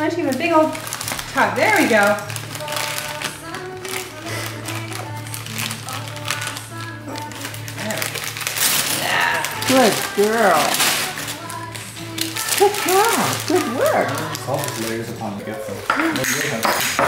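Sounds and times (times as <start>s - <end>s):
people talking indistinctly: 0.0s - 5.2s, 6.0s - 17.0s
crinkling: 0.0s - 17.0s.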